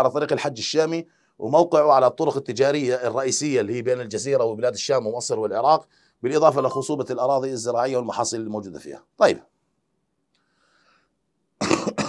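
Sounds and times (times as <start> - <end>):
faint breath: 1.1 - 1.4, 5.8 - 6.2, 10.4 - 11.2
man coughing: 11.6 - 12.0.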